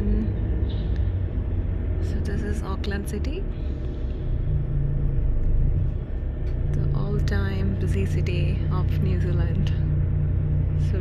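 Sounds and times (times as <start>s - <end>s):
woman speaking: 0.0s - 0.4s, 2.0s - 3.5s, 6.8s - 9.9s, 10.8s - 11.0s
engine and road rumble: 0.0s - 11.0s.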